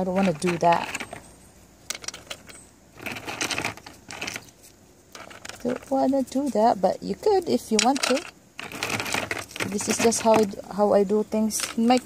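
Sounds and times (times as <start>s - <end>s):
rocks clicking and clattering: 0.0s - 10.7s.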